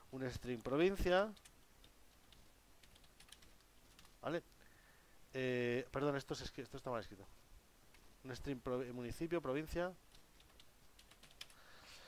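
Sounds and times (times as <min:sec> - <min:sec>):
keyboard typing: 0:01.3 - 0:04.2, 0:10.1 - 0:11.6.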